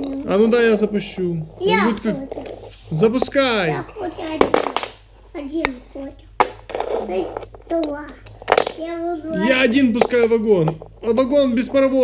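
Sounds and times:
child talking: 1.6 - 2.6, 3.7 - 4.7, 5.3 - 6.3, 7.0 - 9.7.

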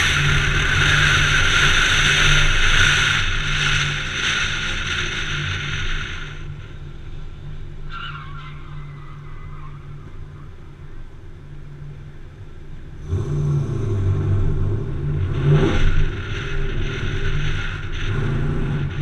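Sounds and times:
car engine revving: 0.0 - 6.8, 12.9 - 19.0.

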